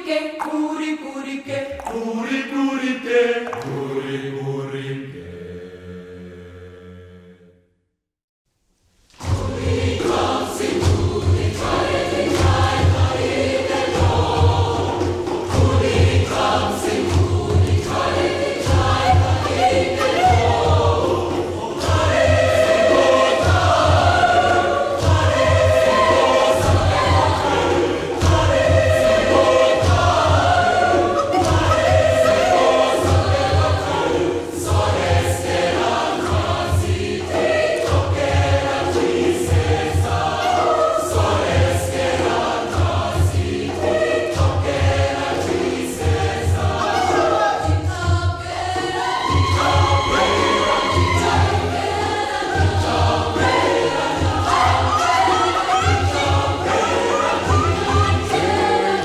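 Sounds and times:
choir singing in harmony: 0.0 - 7.6, 9.2 - 59.0.

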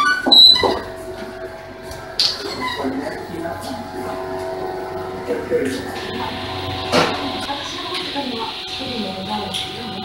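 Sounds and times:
high-pitched squeak: 0.0 - 1.0, 2.2 - 3.2.

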